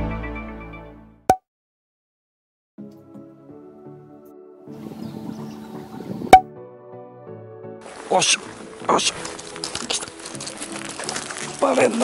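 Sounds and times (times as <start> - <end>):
sustained keyboard music: 2.8 - 12.0.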